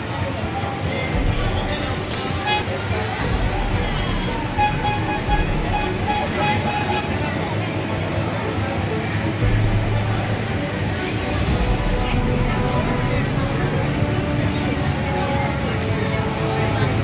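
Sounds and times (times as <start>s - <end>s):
music playing: 0.0s - 17.0s
people's voices: 0.0s - 17.0s
traffic rumble: 0.0s - 17.0s.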